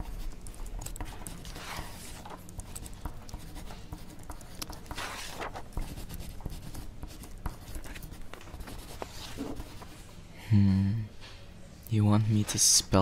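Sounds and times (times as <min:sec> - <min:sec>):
pencil writing on paper: 0:00.0 - 0:10.0.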